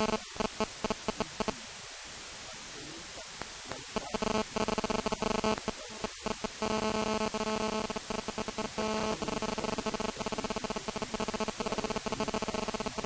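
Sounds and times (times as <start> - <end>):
stuttering electronic buzz: 0.0 - 1.6, 3.7 - 13.0
steady electronic tones: 0.0 - 1.7, 2.4 - 13.0.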